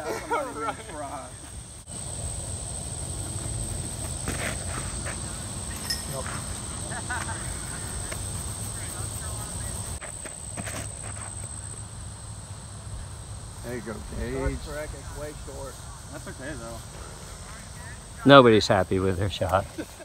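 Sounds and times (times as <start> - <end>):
high insect drone: 0.0 - 20.0
faint distant voices: 6.0 - 10.0, 12.6 - 19.7.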